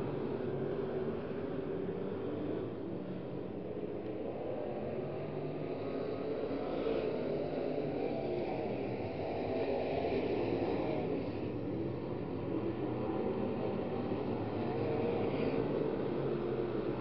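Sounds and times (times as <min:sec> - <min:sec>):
race car engines droning: 0:00.0 - 0:17.0.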